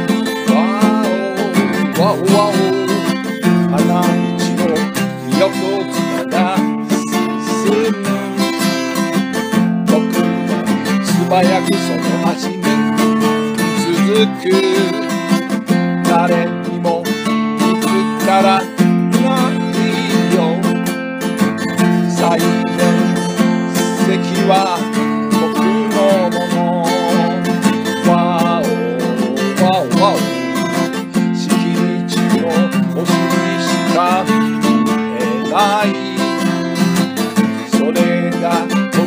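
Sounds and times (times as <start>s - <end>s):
person singing: 0.0s - 39.0s
strummed acoustic guitar: 0.0s - 39.0s.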